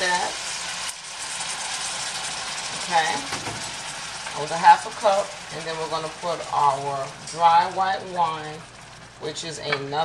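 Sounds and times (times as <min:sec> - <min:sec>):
meat sizzling in oil: 0:00.0 - 0:09.4
juice pouring into pan: 0:00.1 - 0:07.3.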